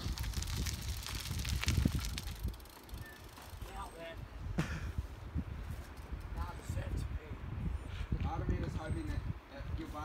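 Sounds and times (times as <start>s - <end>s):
bicycle riding past: 0.0s - 4.0s
wind rumbling on microphone: 0.0s - 10.0s.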